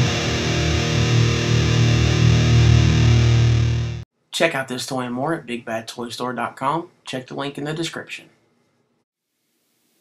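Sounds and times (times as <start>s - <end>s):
distorted electric guitar music: 0.0s - 4.0s.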